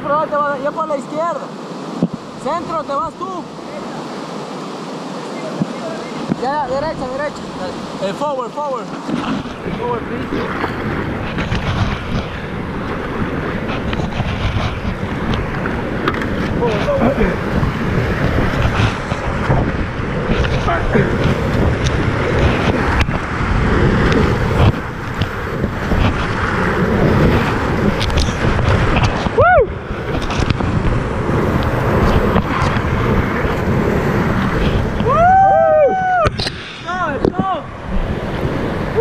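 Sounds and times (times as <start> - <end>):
whitewater rushing and splashing: 0.0 - 39.0
wind buffeting microphone: 1.5 - 39.0.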